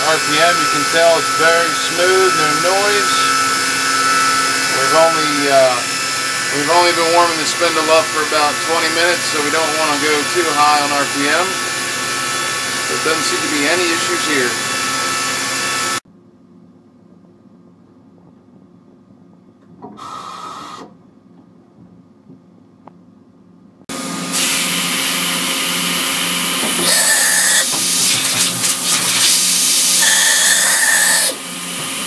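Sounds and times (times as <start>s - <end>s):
loud machine hiss: 0.0s - 16.0s, 20.0s - 20.9s, 24.2s - 32.0s
machine hum: 0.0s - 16.3s
brief high whines: 26.7s - 28.4s, 29.0s - 31.4s.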